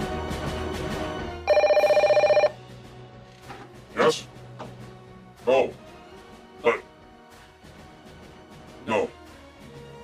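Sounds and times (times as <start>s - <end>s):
background music: 0.0s - 10.0s
telephone ringing: 1.5s - 2.6s.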